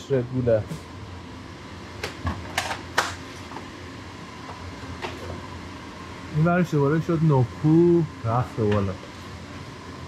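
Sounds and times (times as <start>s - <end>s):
ventilation hum: 0.0s - 10.0s.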